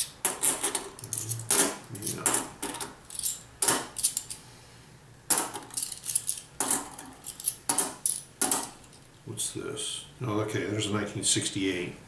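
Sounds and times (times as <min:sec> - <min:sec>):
coins clinking in the hand: 0:00.0 - 0:04.4, 0:05.3 - 0:08.9.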